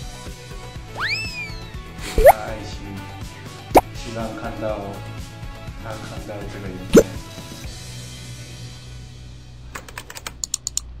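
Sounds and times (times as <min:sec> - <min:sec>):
faint background music: 0:01.0 - 0:11.0.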